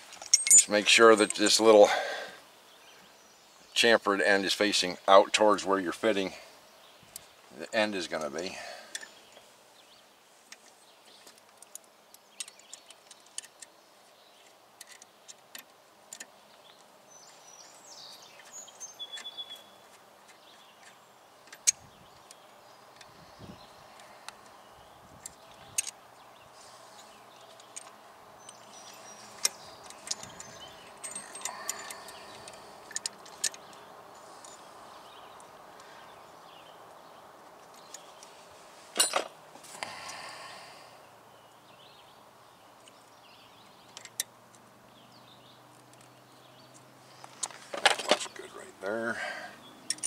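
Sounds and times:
faint bird calls: 16.1s - 38.4s, 39.7s - 44.0s.

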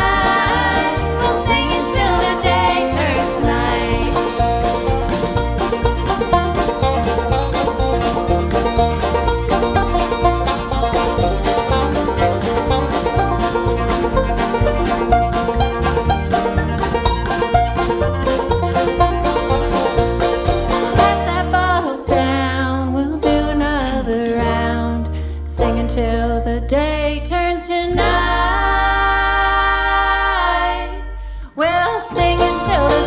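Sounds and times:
banjo playing: 0.0s - 33.0s
bluegrass band playing: 0.0s - 33.0s.

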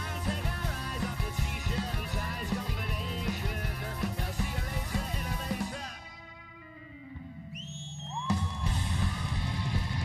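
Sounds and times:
rock drums and distorted guitars: 0.0s - 10.0s.

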